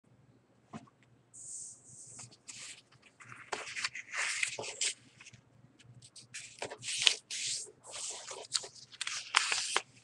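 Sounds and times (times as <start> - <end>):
paper rustling and crinkling: 2.2 - 5.4, 6.0 - 10.0.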